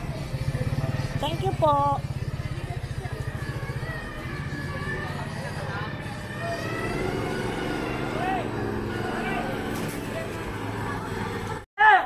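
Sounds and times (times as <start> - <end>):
busy street noise: 0.0 - 11.7
vehicle engine rumbling: 0.0 - 11.7.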